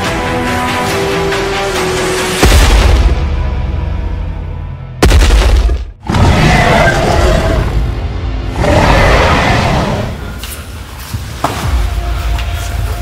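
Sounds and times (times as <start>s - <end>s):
dramatic film music: 0.0s - 13.0s
dinosaur roars: 6.1s - 7.9s, 8.5s - 10.3s.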